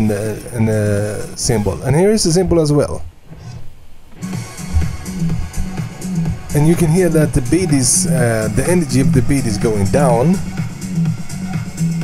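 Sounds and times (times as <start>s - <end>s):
house music with bass line: 4.2s - 12.0s.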